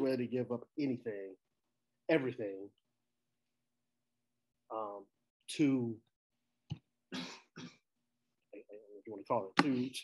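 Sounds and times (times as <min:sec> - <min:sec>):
man speaking: 0:04.7 - 0:06.1, 0:08.6 - 0:10.0.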